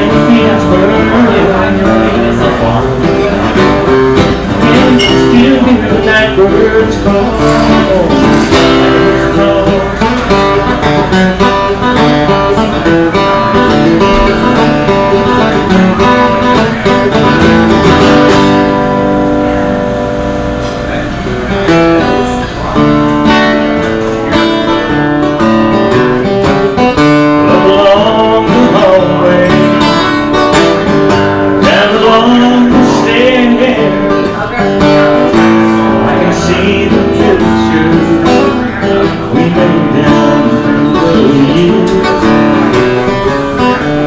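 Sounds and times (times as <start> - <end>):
person singing: 0.0 - 3.6, 4.6 - 10.7, 27.4 - 30.2, 31.6 - 34.7, 35.5 - 43.4
acoustic guitar picked and strummed: 0.0 - 44.0.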